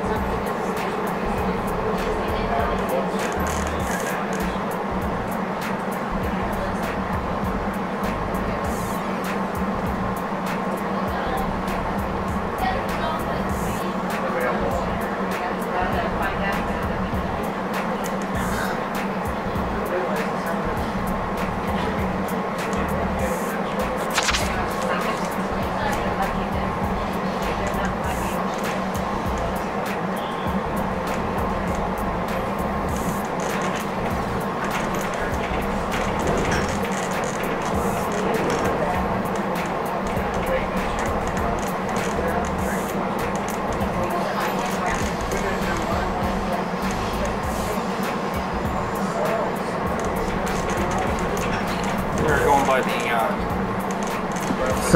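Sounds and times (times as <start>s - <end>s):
rail car rumbling at speed: 0.0s - 54.9s.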